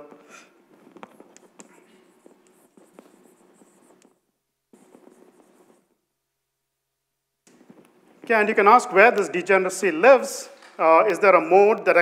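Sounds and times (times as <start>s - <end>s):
chalk scratching on blackboard: 1.1s - 5.9s.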